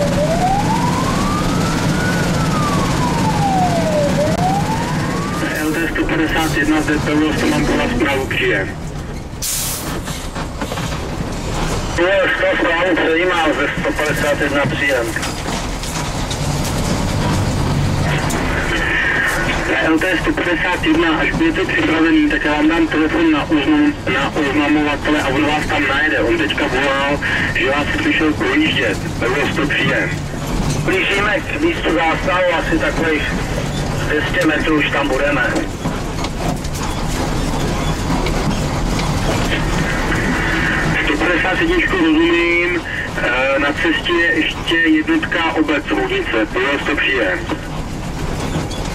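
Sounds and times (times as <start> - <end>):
road noise: 0.0 - 48.9
truck engine from inside cab: 0.0 - 48.9
body and gear rattling over bumps: 10.0 - 12.0, 13.7 - 18.5, 28.1 - 41.1, 47.3 - 48.9.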